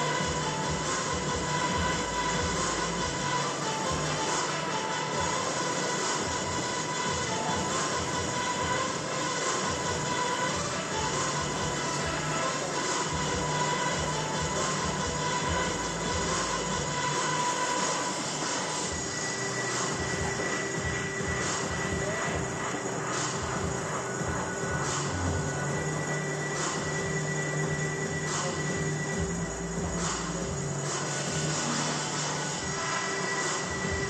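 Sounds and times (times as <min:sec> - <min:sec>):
background music: 0:00.0 - 0:34.0
steady drone: 0:00.0 - 0:34.0.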